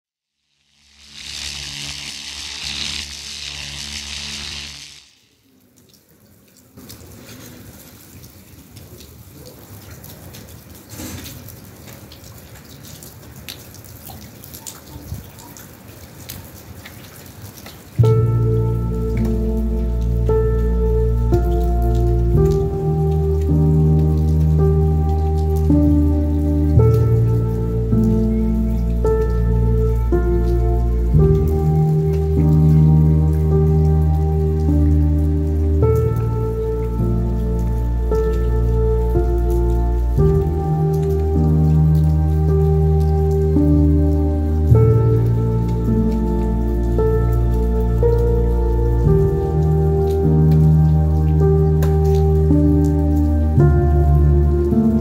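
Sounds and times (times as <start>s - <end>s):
rain falling on wet paving: 0.6s - 55.0s
water drips: 0.9s - 55.0s
music with low chords: 18.0s - 55.0s.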